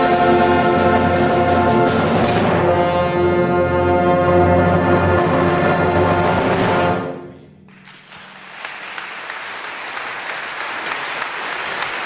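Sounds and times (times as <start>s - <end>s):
wind band sustained chords: 0.0s - 8.6s.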